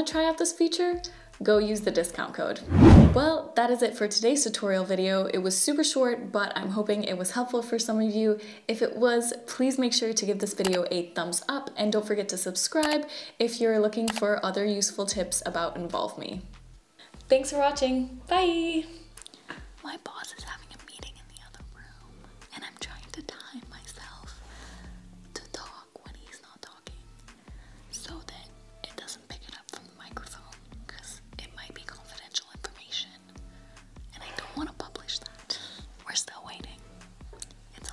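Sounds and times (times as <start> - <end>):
woman whispering: 19.8 - 24.4, 25.4 - 27.1, 27.9 - 33.2, 34.1 - 36.8.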